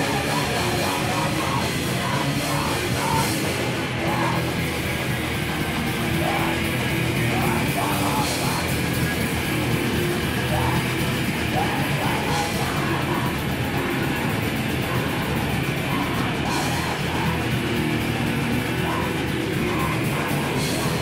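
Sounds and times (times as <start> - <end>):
bass guitar: 0.0 - 21.0
distorted electric guitars: 0.0 - 21.0.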